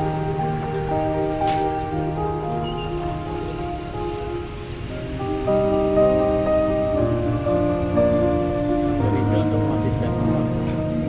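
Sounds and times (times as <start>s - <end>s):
slow sustained music chords: 0.0s - 11.0s.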